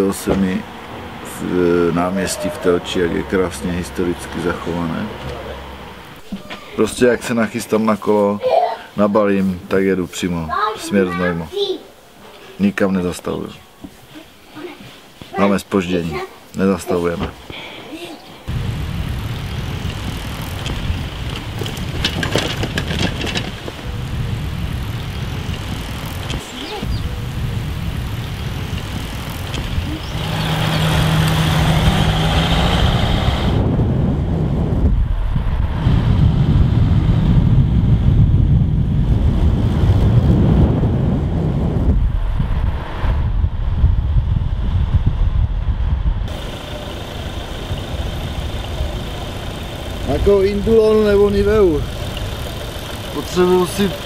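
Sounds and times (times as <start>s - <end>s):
road and wind noise: 0.0s - 54.0s
steady low hum: 18.4s - 31.8s, 33.5s - 54.0s.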